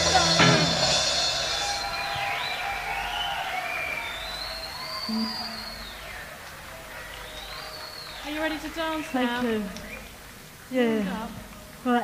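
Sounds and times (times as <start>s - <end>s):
audience cheering and applause: 0.0s - 10.5s
long gliding whistles: 0.1s - 10.2s.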